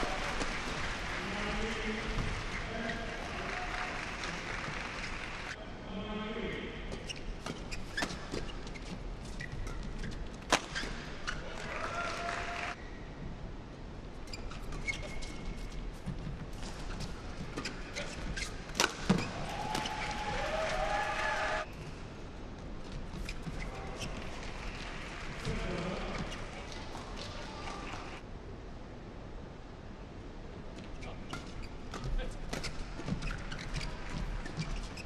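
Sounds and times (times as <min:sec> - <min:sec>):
shoes squeaking on court: 0:00.2 - 0:03.3, 0:06.9 - 0:11.6, 0:14.2 - 0:20.2, 0:22.6 - 0:28.2, 0:30.8 - 0:35.0
rackets hitting shuttlecock: 0:17.6 - 0:20.1.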